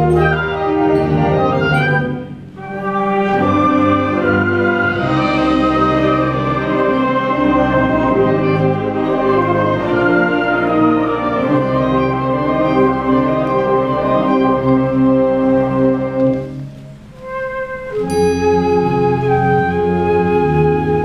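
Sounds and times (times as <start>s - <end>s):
wind ensemble playing chords: 0.0s - 21.0s.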